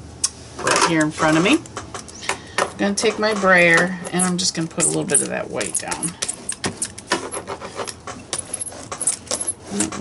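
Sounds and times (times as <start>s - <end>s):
brayer rolling over paper: 2.8s - 10.0s.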